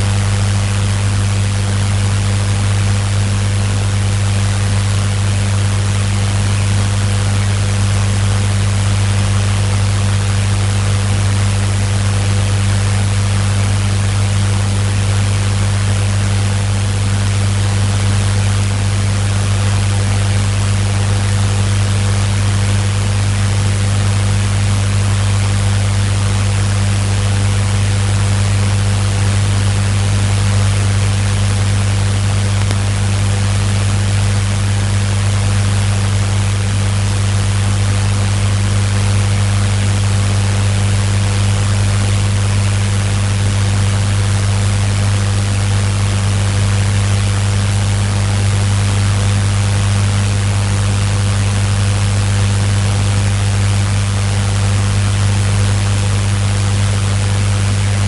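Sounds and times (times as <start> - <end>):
loud low hum: 0.0 - 58.0.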